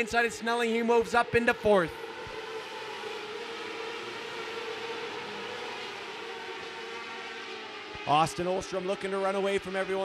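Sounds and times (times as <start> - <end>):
racing car engines droning: 0.0 - 10.0.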